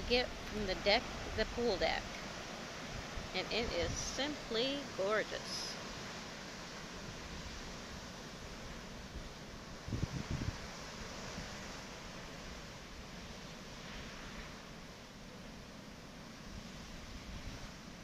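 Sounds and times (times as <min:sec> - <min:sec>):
wind gust buffeting microphone: 0:00.0 - 0:04.6, 0:09.1 - 0:11.7
wind noise: 0:00.0 - 0:04.6, 0:07.0 - 0:14.7, 0:16.4 - 0:18.0.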